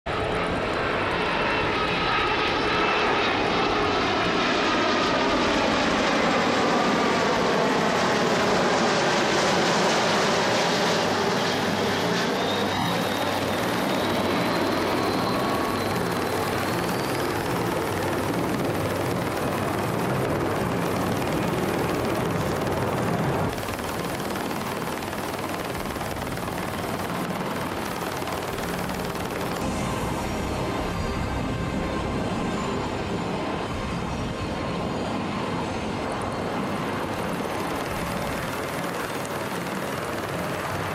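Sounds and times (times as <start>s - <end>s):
jet engines roaring: 0.1s - 40.9s
thin rising whine: 11.5s - 34.7s.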